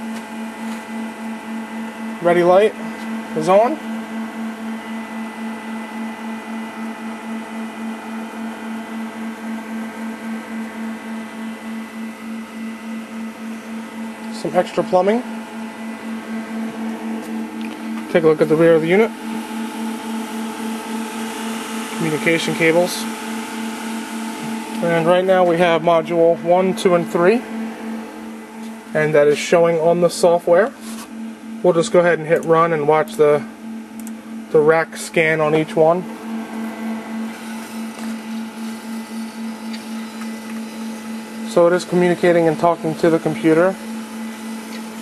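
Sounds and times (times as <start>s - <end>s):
cooling fans humming: 0.0s - 45.0s
steady higher tones: 7.8s - 45.0s
low throbbing tone: 9.8s - 45.0s.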